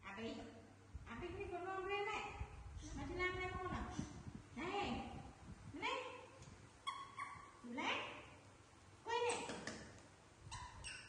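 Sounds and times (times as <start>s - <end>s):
baby monkeys cooing: 10.5s - 11.0s
brief squeaks: 10.5s - 11.0s.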